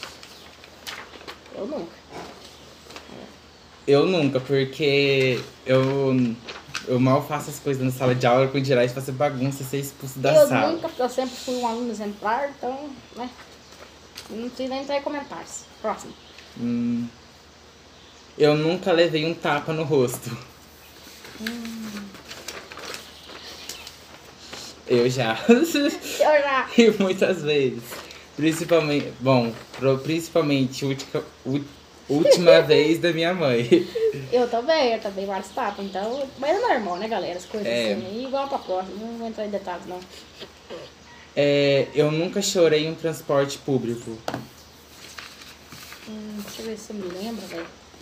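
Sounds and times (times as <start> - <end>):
paper rustling: 0.0 - 3.2, 5.1 - 7.7, 20.1 - 33.0, 44.3 - 48.0
person humming: 21.4 - 22.2.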